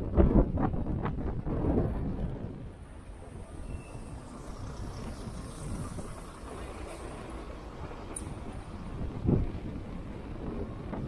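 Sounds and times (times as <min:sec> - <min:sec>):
street traffic with buses: 0:00.0 - 0:11.0
wind buffeting microphone: 0:00.0 - 0:11.0.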